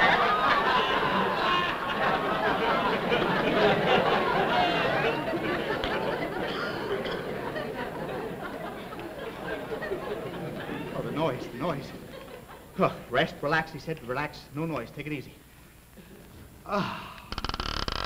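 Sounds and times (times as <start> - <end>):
audience laughing: 0.0 - 13.4.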